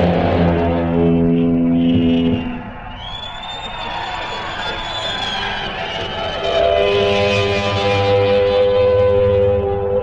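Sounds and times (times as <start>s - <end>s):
crowd cheering: 0.0s - 7.4s
high steady whistle-like tone: 1.1s - 8.1s.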